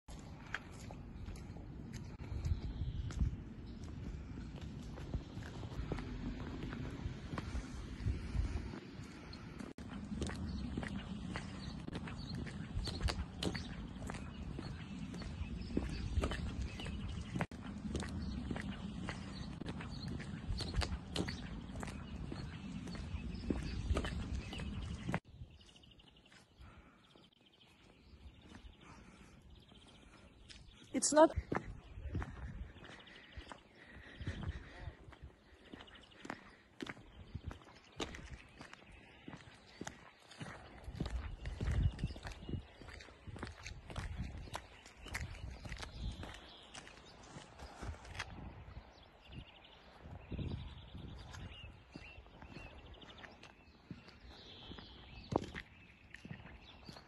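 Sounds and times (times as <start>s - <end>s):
footsteps crunching in snow: 0.1s - 26.5s, 30.0s - 49.1s
wind rumbling on microphone: 0.1s - 26.8s, 31.4s - 57.0s.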